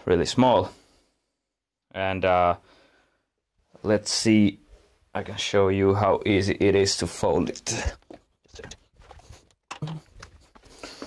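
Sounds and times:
handling and shuffling noises: 7.5 - 11.0.

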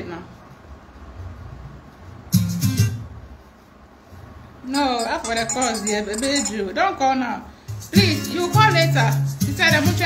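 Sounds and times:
phone ringtone: 4.7 - 6.8.

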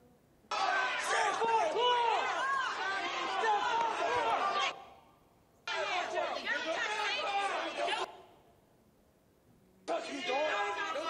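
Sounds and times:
crowd voices talking: 5.7 - 8.3.

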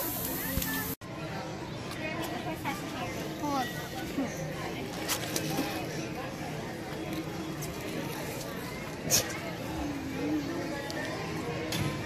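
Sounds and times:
indistinct voices of children: 0.0 - 12.0.

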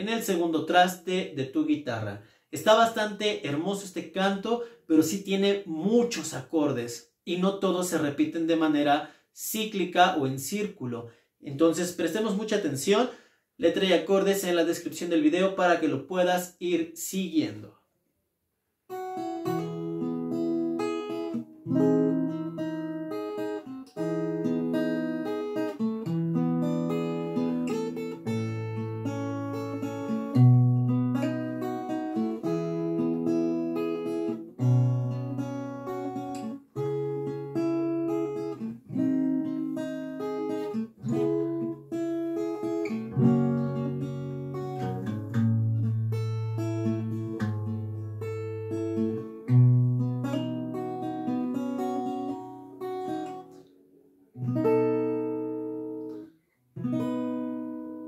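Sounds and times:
acoustic guitar playing chords: 18.9 - 58.0.

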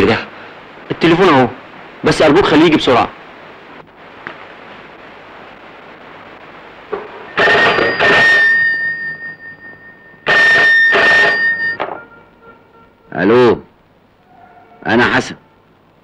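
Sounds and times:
telephone bell ringing: 7.3 - 12.6.

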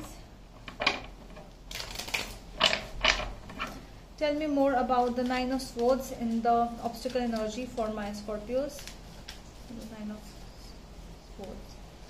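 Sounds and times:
cards being shuffled by hand: 1.7 - 2.4, 4.9 - 10.6.

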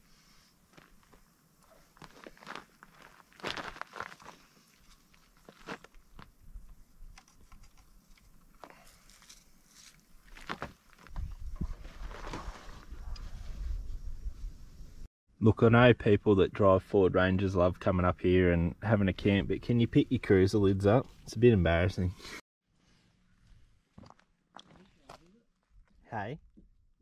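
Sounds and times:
footsteps on gravel: 0.7 - 6.4, 9.1 - 12.8, 24.0 - 25.2.

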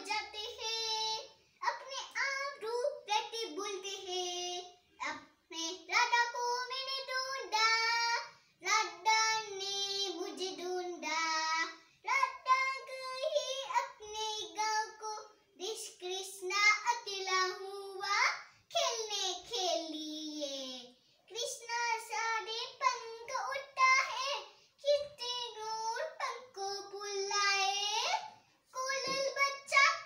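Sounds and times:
girl singing unaccompanied: 0.0 - 30.0.

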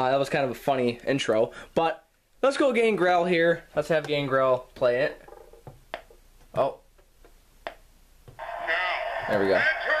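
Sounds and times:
tinny toy speaker audio: 8.4 - 10.0.

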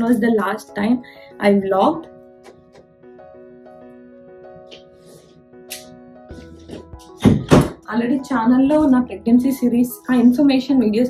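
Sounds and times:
soft background music: 0.0 - 11.0
heavy thuds: 6.4 - 7.8.

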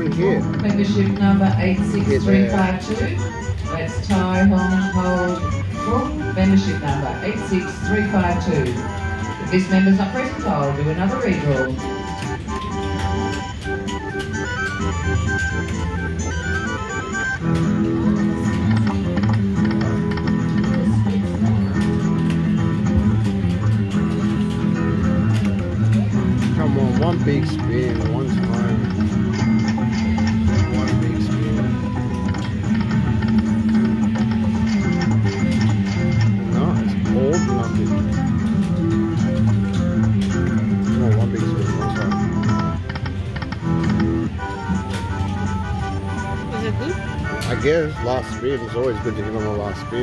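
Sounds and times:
plucked guitar tune: 0.0 - 50.0.

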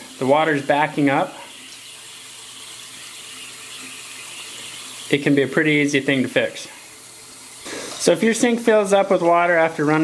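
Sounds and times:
faucet running into sink: 0.0 - 10.0.

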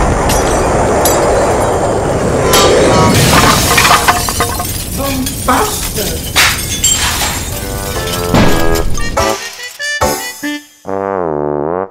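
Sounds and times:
debris crashing and clattering: 2.5 - 9.9
music: 7.6 - 11.9.

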